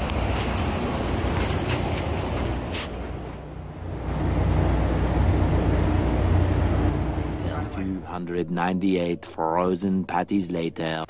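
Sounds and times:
low mechanical drone: 0.0s - 11.0s.

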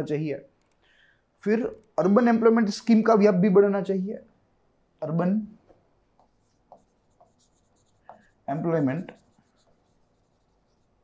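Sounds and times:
pen scratching and tapping a screen: 6.1s - 11.0s.

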